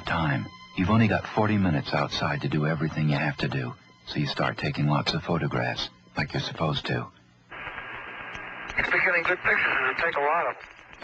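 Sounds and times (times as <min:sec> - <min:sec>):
radio hiss: 0:00.0 - 0:11.0
man's voice over radio: 0:08.8 - 0:10.6.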